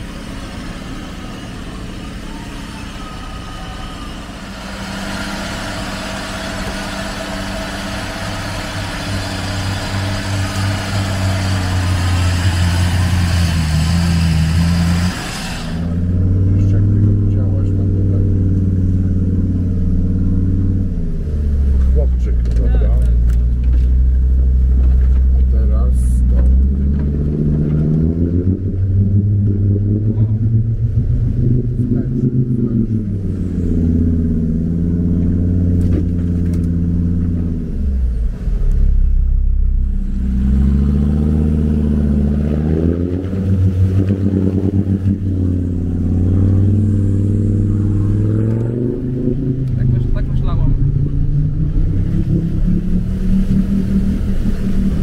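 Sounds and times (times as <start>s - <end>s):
engine droning: 0.0s - 55.0s
engine revving: 0.0s - 55.0s.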